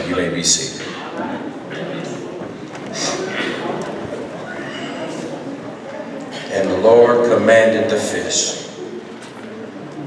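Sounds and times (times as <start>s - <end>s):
scattered voices: 0.0s - 10.0s.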